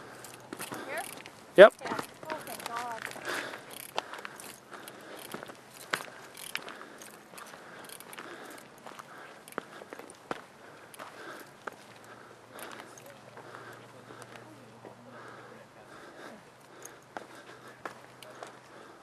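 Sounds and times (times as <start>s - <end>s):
footsteps on gravel: 0.4s - 15.0s.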